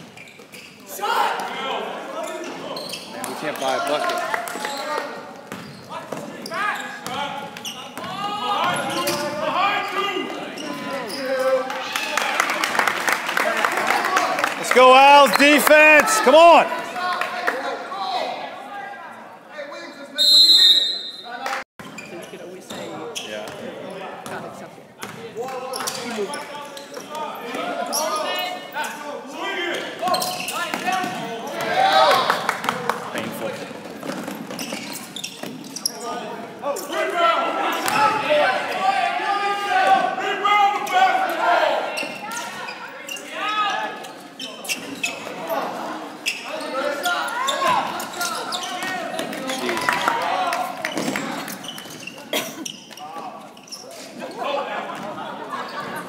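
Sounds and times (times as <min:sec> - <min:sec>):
people shouting: 0:14.7 - 0:16.9
high whistle blast: 0:20.2 - 0:21.3.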